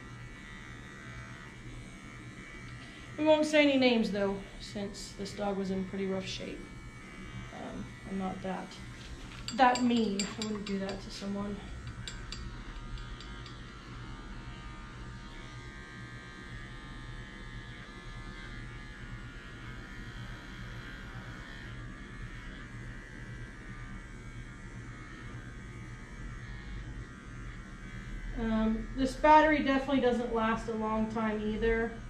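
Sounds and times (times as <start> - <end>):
pet trimmer buzzing: 0.0 - 32.0.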